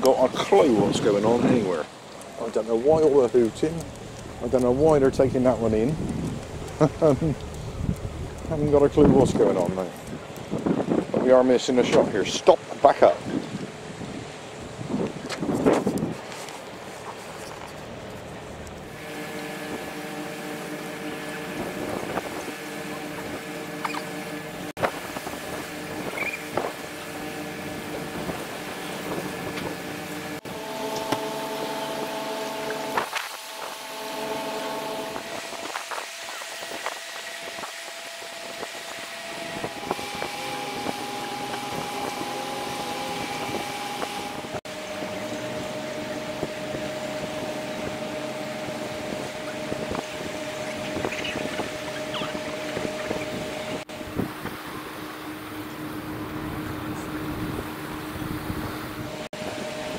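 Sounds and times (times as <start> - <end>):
boat horns blasting: 18.8 - 59.9.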